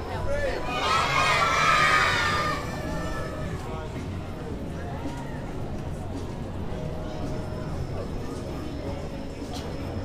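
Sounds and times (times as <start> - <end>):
children shouting and screaming: 0.6 - 3.6.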